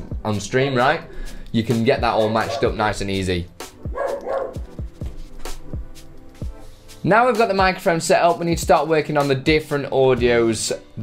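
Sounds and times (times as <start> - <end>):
dog barking: 2.4 - 2.8, 3.9 - 4.7
music with kick-drum beat: 3.6 - 7.8, 8.5 - 8.8.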